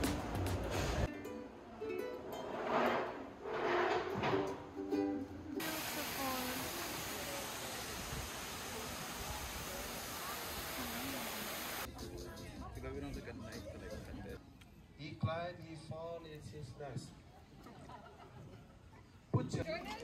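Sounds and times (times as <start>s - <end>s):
plucked string music: 1.1s - 2.4s, 4.4s - 5.6s
waterfall rushing: 5.6s - 11.9s.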